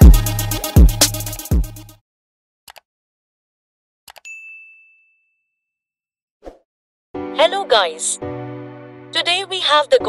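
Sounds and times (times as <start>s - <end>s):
bright bell ding: 4.2s - 5.6s.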